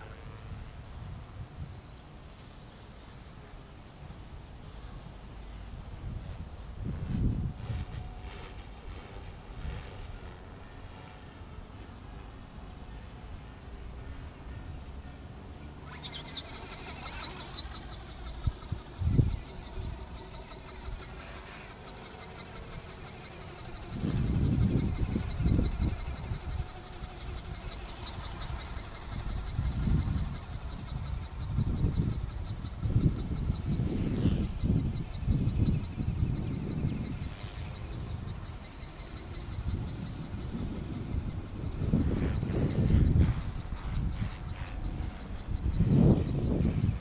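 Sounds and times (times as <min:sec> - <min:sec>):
high-pitched pulsing buzz: 0:00.0 - 0:47.0
wind gusting against microphone: 0:05.6 - 0:11.1, 0:15.6 - 0:47.0.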